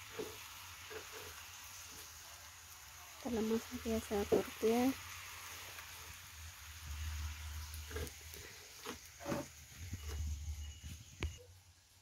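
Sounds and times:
meat sizzling in a skillet: 0.0s - 12.0s.

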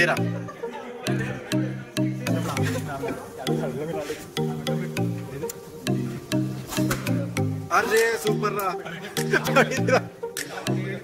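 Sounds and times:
background music with beat: 0.0s - 11.0s
voices: 0.0s - 11.0s.

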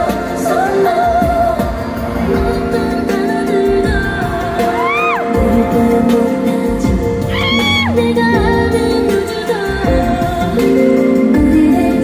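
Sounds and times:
pop backing track: 0.0s - 12.0s
woman singing into microphone: 0.0s - 12.0s.

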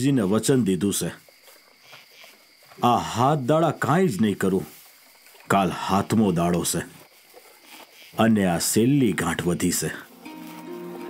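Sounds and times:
man speaking: 0.0s - 1.2s, 2.8s - 4.8s, 5.5s - 7.0s, 8.2s - 10.1s.

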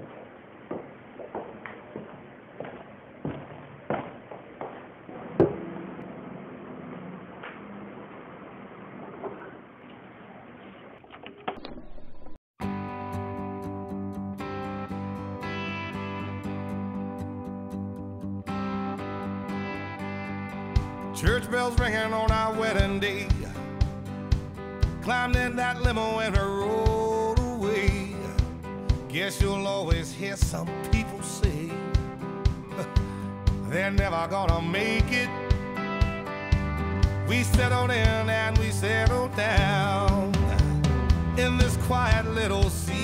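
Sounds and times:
country song intro: 12.6s - 43.0s.

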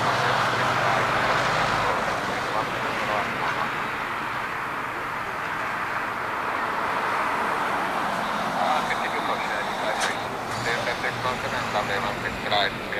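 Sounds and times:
people's voices: 0.0s - 7.0s, 8.1s - 12.9s
distant jet engines rushing: 0.0s - 12.9s.

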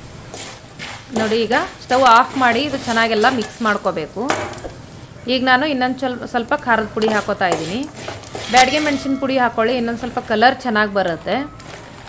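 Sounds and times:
light sizzle: 0.0s - 12.0s
wooden spatula stirring: 0.3s - 3.8s, 7.0s - 9.4s
woman talking: 1.1s - 4.4s, 5.2s - 7.9s, 8.5s - 11.6s.

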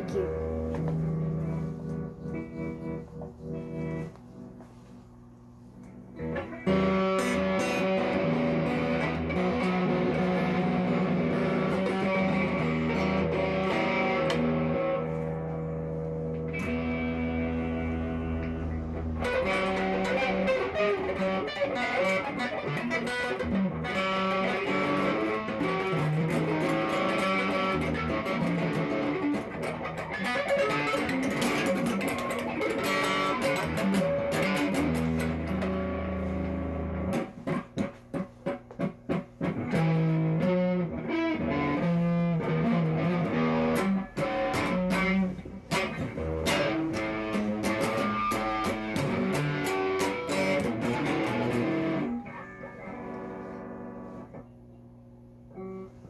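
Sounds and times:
electric guitar riffs: 0.0s - 56.0s.

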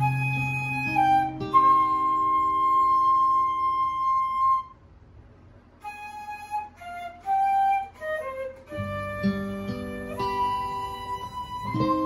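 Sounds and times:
flute holding long note: 0.0s - 4.8s, 5.8s - 12.0s.

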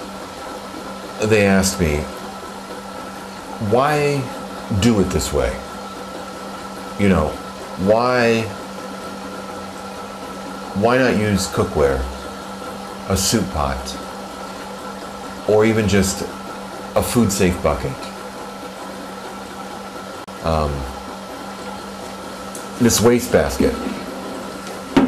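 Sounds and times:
circulator motor hum: 0.0s - 25.0s
man talking: 1.2s - 2.1s, 3.6s - 5.7s, 7.0s - 8.6s, 10.7s - 12.2s, 13.0s - 14.0s, 15.5s - 16.4s, 17.0s - 18.1s, 20.4s - 21.0s, 22.8s - 24.0s.

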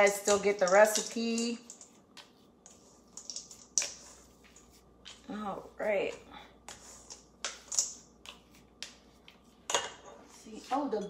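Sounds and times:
spatula scraping a steel bowl: 5.9s - 7.9s.

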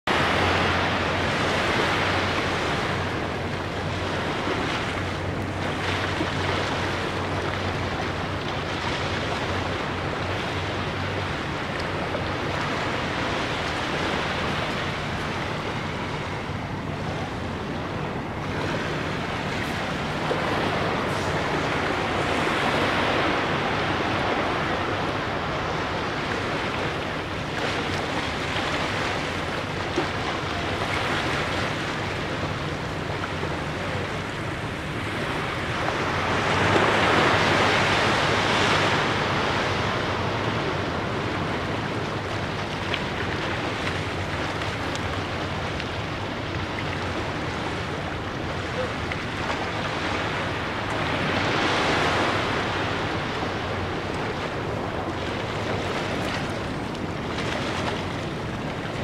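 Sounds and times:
small waves washing onto sand: 0.1s - 59.0s.

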